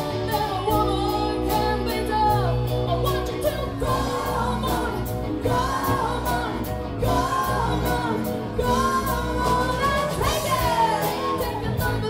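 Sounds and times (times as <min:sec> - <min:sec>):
bass guitar: 0:00.0 - 0:12.0
electric guitars: 0:00.0 - 0:12.0
person singing: 0:00.0 - 0:12.0
drum kit beat: 0:03.4 - 0:12.0.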